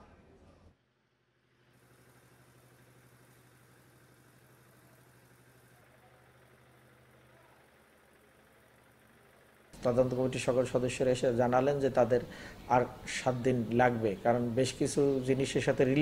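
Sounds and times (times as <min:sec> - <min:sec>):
faint low hum: 0:03.2 - 0:16.0.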